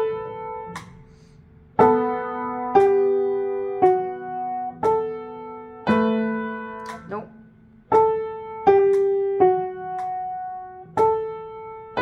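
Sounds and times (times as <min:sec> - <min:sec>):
upright piano chord: 0:01.8 - 0:07.2.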